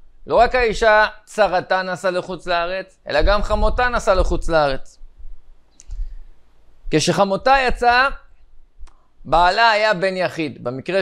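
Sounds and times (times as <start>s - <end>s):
man speaking: 0.3s - 5.0s, 6.9s - 8.3s, 9.2s - 11.0s
faint click: 5.7s - 6.1s, 8.8s - 9.1s.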